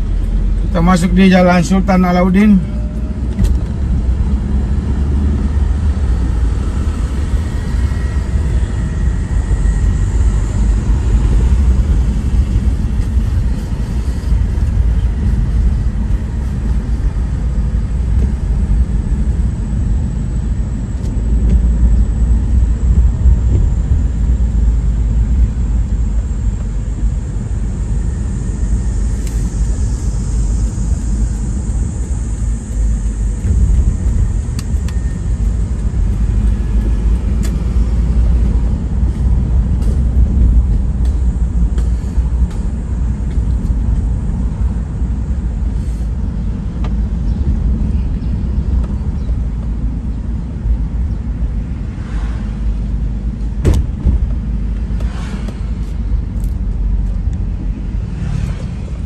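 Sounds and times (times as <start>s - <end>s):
car road and engine rumble: 0.0s - 59.0s.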